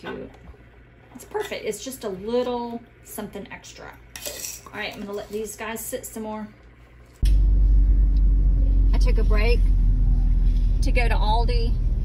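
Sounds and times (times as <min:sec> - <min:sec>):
car rumble heard from inside: 0:07.2 - 0:12.0.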